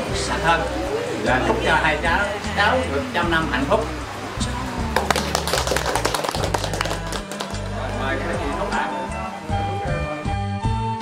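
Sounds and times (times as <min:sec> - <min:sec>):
background music: 0:00.0 - 0:11.0
people clapping: 0:04.8 - 0:08.3.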